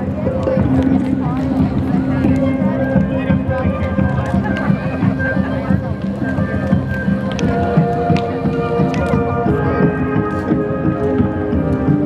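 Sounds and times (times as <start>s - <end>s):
murmur of crowd talking: 0.0s - 12.0s
music with long held tones: 0.0s - 12.0s.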